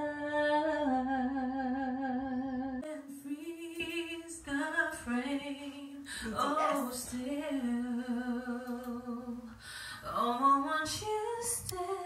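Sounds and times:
woman singing long notes: 0:00.0 - 0:09.5.

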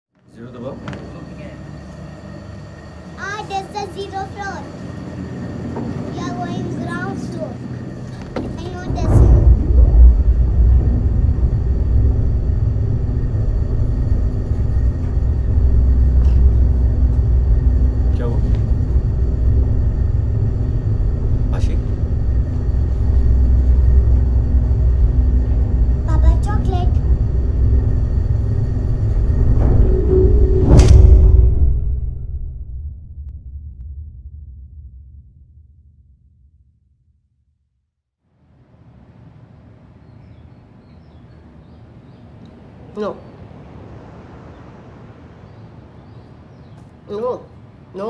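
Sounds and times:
low rumbling drone: 0:00.4 - 0:37.7.

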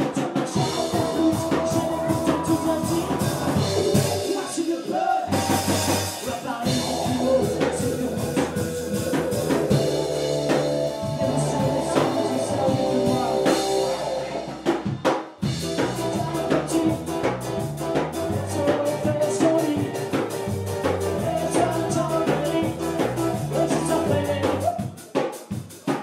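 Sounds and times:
driving drum kit: 0:00.0 - 0:26.0
rock band playing: 0:00.0 - 0:26.0.

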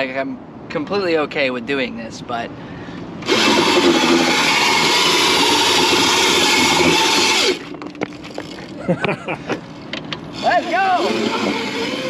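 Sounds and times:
electric motor grinding hiss: 0:03.2 - 0:07.7, 0:10.3 - 0:12.0
cart knocks and clatters: 0:07.6 - 0:08.9.

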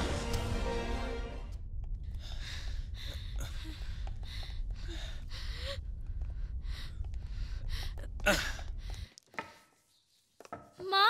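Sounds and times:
deep steady rumble: 0:01.5 - 0:09.1.

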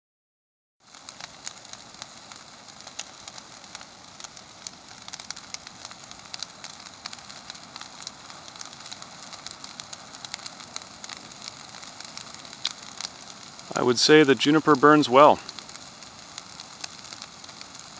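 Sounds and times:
brush fire crackling and popping: 0:00.8 - 0:17.9.

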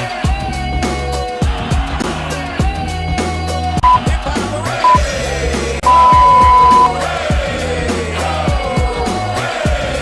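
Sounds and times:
long loud timer beep: 0:03.8 - 0:04.0, 0:05.9 - 0:07.0
short timer beep: 0:03.8 - 0:04.0, 0:05.9 - 0:06.9
upbeat workout music: 0:03.8 - 0:04.1, 0:05.8 - 0:07.0.

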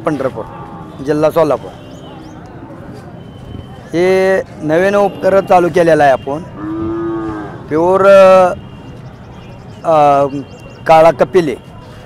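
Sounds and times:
cattle mooing: 0:06.5 - 0:07.8.

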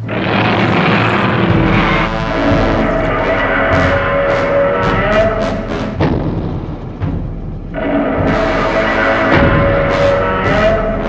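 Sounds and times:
film score music: 0:00.0 - 0:11.0
loud rushing noise: 0:00.0 - 0:11.0.

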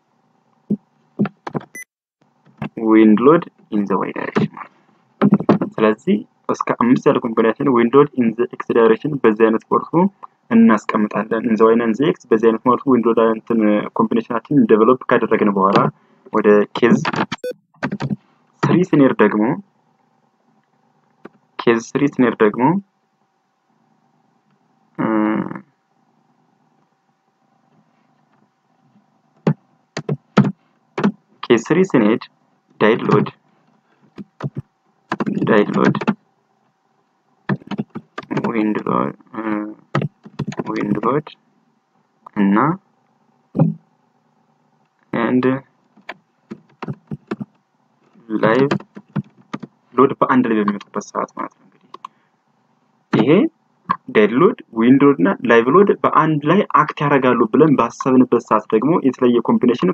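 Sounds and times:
keyboard keys tapping: 0:00.7 - 0:01.8, 0:05.2 - 0:05.9, 0:16.9 - 0:18.8, 0:29.4 - 0:31.2, 0:33.0 - 0:33.3, 0:34.1 - 0:36.2, 0:37.5 - 0:38.8, 0:39.9 - 0:41.3, 0:43.6 - 0:43.8, 0:46.0 - 0:47.6, 0:48.4 - 0:49.7
man speaking: 0:02.7 - 0:04.7, 0:05.6 - 0:17.2, 0:18.6 - 0:19.6, 0:21.6 - 0:22.8, 0:25.0 - 0:25.6, 0:31.4 - 0:33.4, 0:35.2 - 0:36.2, 0:38.3 - 0:39.9, 0:40.6 - 0:41.4, 0:42.3 - 0:42.8, 0:45.1 - 0:45.7, 0:48.2 - 0:48.8, 0:50.0 - 0:51.6, 0:53.1 - 0:59.9
man saying uhh: 0:25.0 - 0:25.6.

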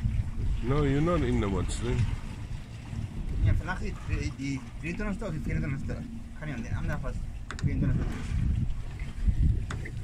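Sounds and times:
fishing boat engine rumble: 0:00.0 - 0:10.0
wind buffeting microphone: 0:00.0 - 0:10.0.

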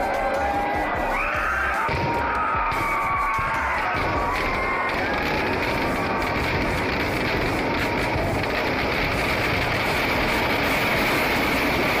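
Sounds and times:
firecrackers crackling: 0:00.0 - 0:12.0
large crowd noise: 0:00.0 - 0:12.0.

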